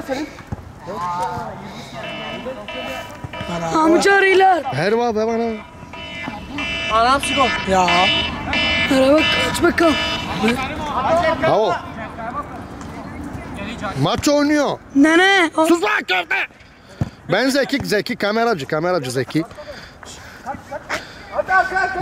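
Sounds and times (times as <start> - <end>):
faint steady tone: 1.7 - 4.8.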